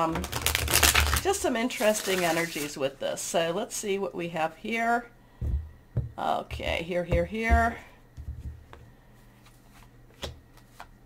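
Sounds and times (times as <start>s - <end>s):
cards rustling: 0.2s - 2.8s.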